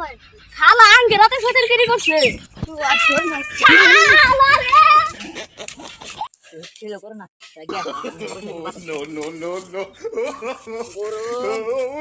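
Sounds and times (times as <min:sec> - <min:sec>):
boys shouting and talking: 0:00.0 - 0:07.0, 0:07.7 - 0:12.0.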